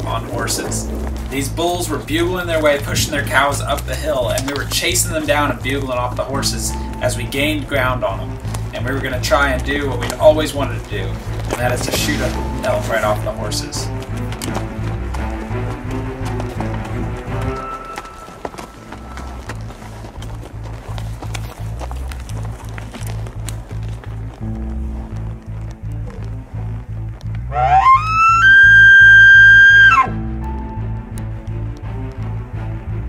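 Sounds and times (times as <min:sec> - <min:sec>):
background music with beat: 0:00.0 - 0:33.0
elk bugle: 0:27.5 - 0:30.3.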